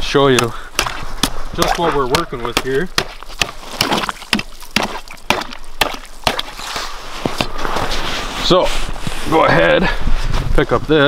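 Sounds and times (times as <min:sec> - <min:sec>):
ice chisel crunching into ice: 0:00.4 - 0:07.7.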